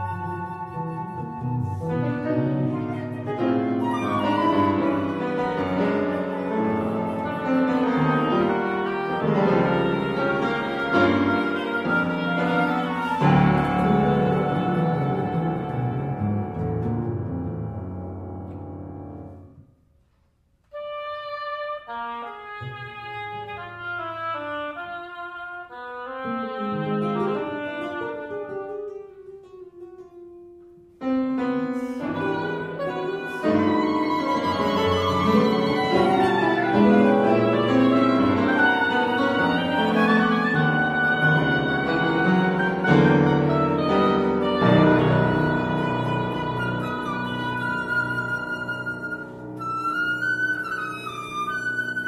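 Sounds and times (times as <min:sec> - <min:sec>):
chamber quartet playing: 0:00.0 - 0:17.7, 0:20.7 - 0:30.0, 0:31.4 - 0:52.0.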